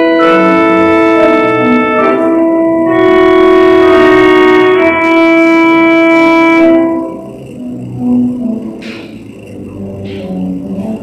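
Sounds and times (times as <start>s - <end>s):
organ chord with reverberation: 0.0s - 11.0s.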